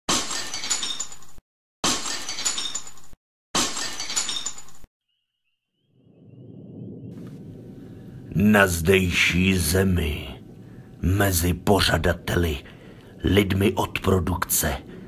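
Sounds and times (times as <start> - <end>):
glass shattering: 3.6 - 4.9
low rumble: 6.0 - 15.0.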